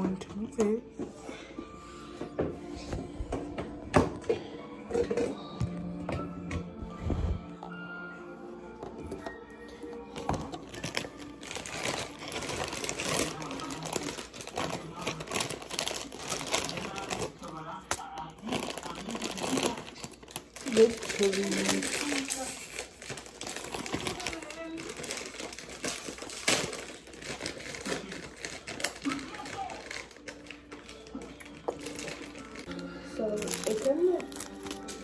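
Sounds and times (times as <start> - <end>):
background music: 0.0 - 35.0
plastic packet crinkling: 10.1 - 35.0.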